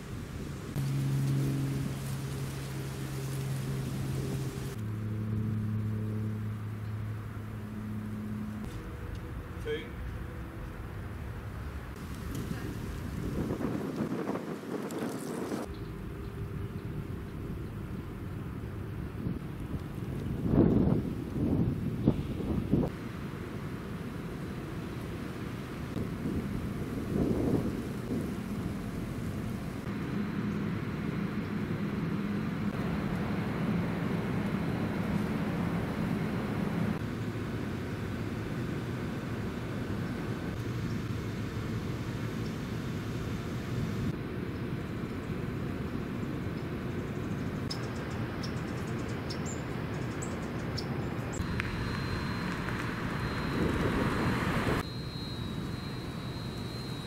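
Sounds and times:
steady low rumble: 0:00.0 - 0:48.3, 0:50.9 - 0:56.8
wind buffeting microphone: 0:12.0 - 0:15.7, 0:16.5 - 0:23.0, 0:25.8 - 0:29.9, 0:51.4 - 0:54.8.

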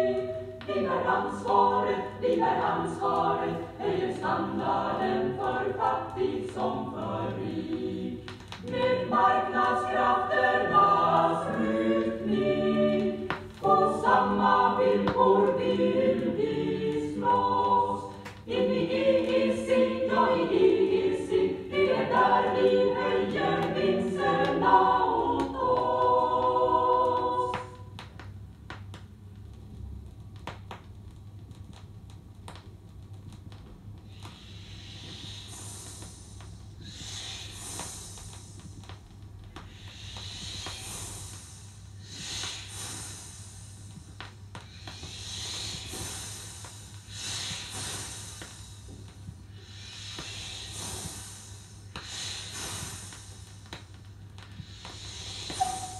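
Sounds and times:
choir singing unaccompanied: 0:00.0 - 0:28.0, 0:55.6 - 0:55.9
breathy hissing bursts: 0:08.7 - 0:18.3, 0:34.1 - 0:38.9, 0:39.5 - 0:55.9.

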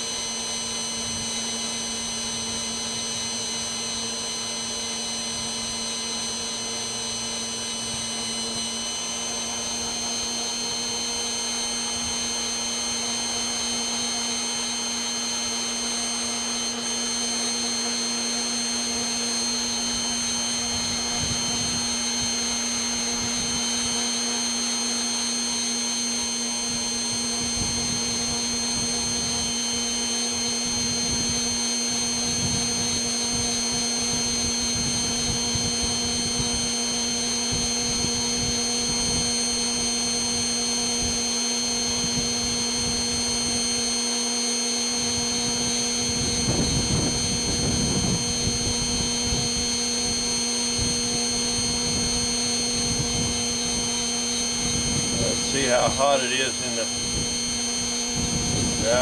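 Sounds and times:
blower motor hum and whine: 0:00.0 - 0:59.0.

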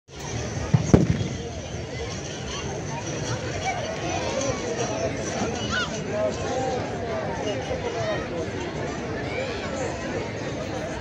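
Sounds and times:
crowd noise: 0:00.1 - 0:11.0
musket shots: 0:00.8 - 0:01.5.

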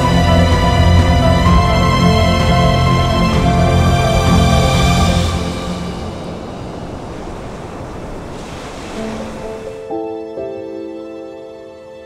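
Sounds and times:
soft music: 0:00.0 - 0:06.9, 0:08.9 - 0:12.0
ocean surf breaking on rocks: 0:00.0 - 0:10.2.

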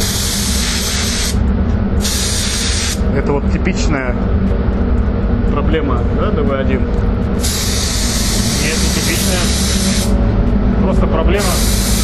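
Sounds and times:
spray gun hissing: 0:00.0 - 0:01.4, 0:02.0 - 0:03.0, 0:07.4 - 0:10.2, 0:11.4 - 0:12.0
steady low rumble: 0:00.0 - 0:12.0.

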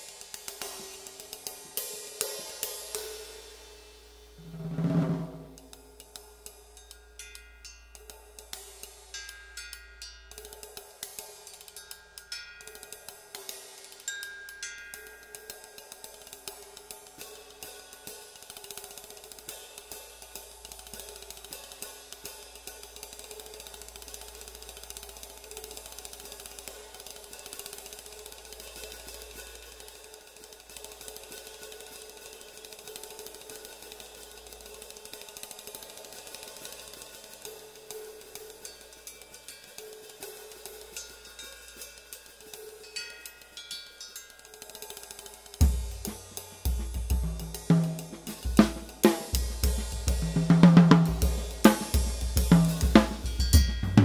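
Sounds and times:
ride cymbal pattern: 0:05.4 - 0:54.0
hi-hat: 0:05.7 - 0:54.0.

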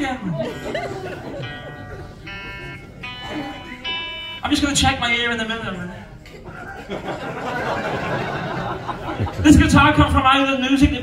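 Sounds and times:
electric guitar single notes ringing: 0:00.0 - 0:06.3.

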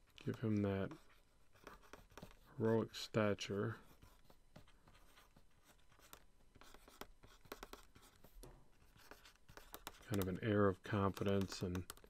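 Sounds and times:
stylus scratching on drawing tablet: 0:00.0 - 0:12.0.

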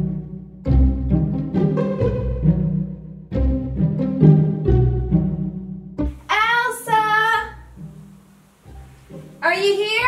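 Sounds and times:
quiet music: 0:00.0 - 0:10.0.

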